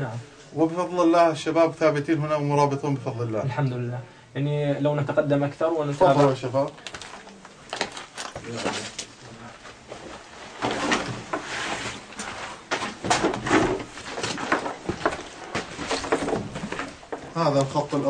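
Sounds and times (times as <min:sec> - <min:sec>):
footsteps and scuffing: 0:06.0 - 0:18.0.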